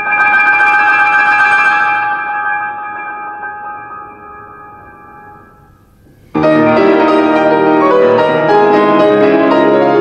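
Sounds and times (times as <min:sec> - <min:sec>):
grand piano chord ringing: 0:00.0 - 0:10.0.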